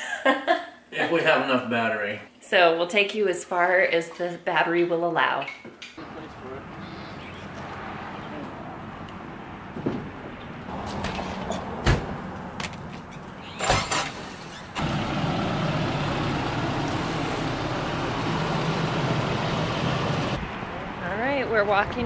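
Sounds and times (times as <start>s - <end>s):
truck engine idling: 10.1s - 20.9s.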